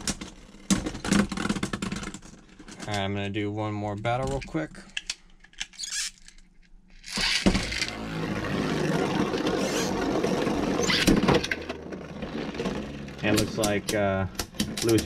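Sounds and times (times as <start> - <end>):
spinning tops grinding on plastic: 7.0 - 15.0.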